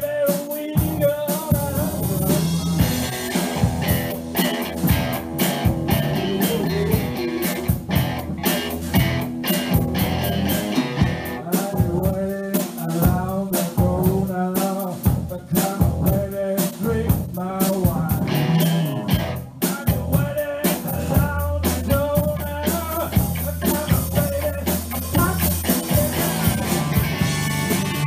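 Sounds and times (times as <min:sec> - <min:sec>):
rock and roll band playing: 0:00.0 - 0:28.0
bending electric guitar lead: 0:01.8 - 0:11.5, 0:18.0 - 0:20.2, 0:22.0 - 0:28.0.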